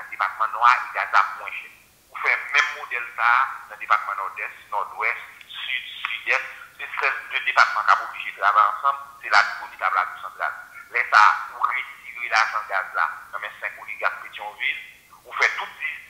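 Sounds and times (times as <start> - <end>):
person speaking over phone line: 0.0 - 16.0.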